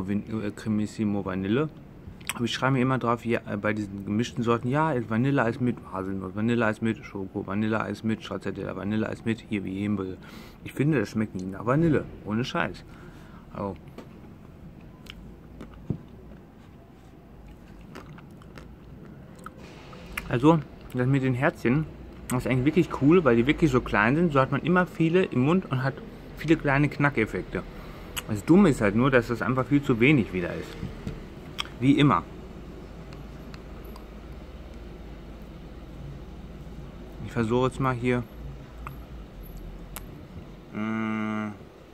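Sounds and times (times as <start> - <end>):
person chewing ice cream: 14.8 - 20.2, 31.5 - 31.8, 33.0 - 35.6
chocolate crunchy clicks: 17.5 - 19.6.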